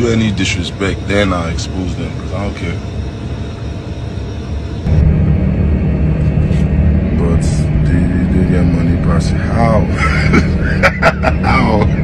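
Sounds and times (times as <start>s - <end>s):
aircraft cabin drone: 0.0s - 12.0s.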